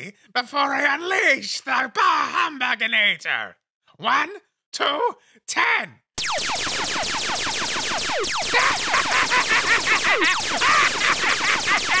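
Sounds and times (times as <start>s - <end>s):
cartoon ray gun zaps: 6.2s - 12.0s.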